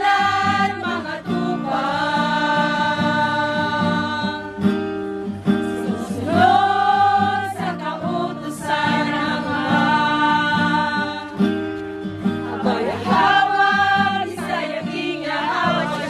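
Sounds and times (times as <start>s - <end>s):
religious song singing: 0.0s - 16.0s.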